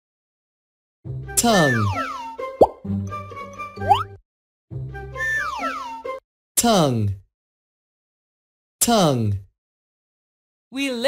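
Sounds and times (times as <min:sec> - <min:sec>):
background music: 0:01.1 - 0:06.2
cartoon plop: 0:02.6 - 0:02.8, 0:03.8 - 0:04.1.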